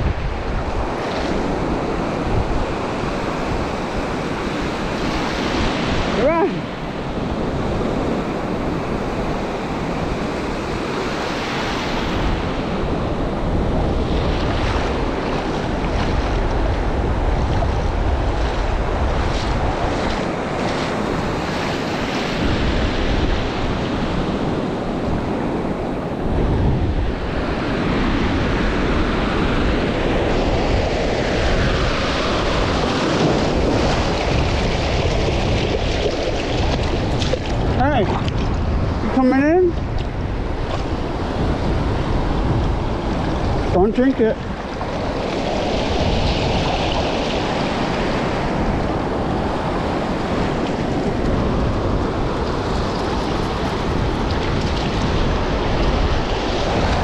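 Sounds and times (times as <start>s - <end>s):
ocean surf breaking: 0.0s - 57.0s
wind buffeting microphone: 0.0s - 57.0s.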